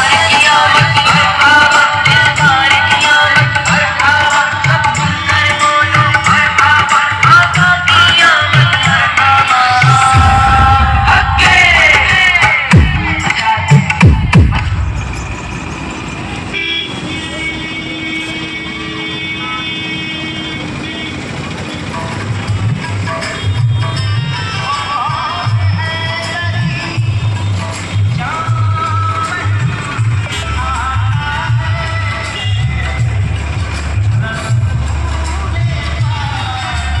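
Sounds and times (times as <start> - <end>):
loud music with singing: 0.0 - 16.5, 22.0 - 37.0
street traffic: 0.0 - 37.0
heavy bass beat from loudspeakers: 4.6 - 16.0
vehicle horn: 16.5 - 21.9, 32.3 - 32.9.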